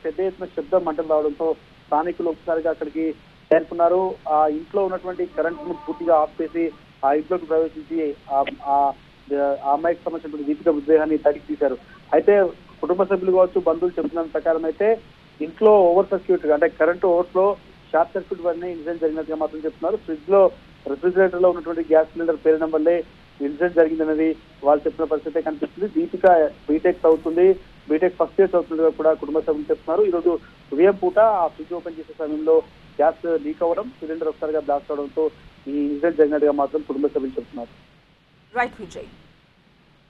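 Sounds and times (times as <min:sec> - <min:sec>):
man reporting: 0:00.0 - 0:37.6.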